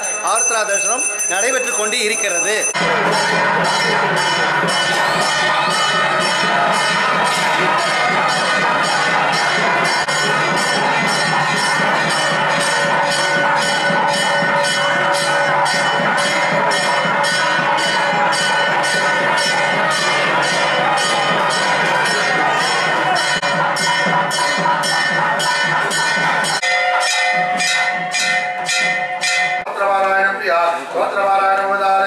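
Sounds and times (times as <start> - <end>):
temple bells ringing: 0.0 - 29.8
music: 2.7 - 29.7.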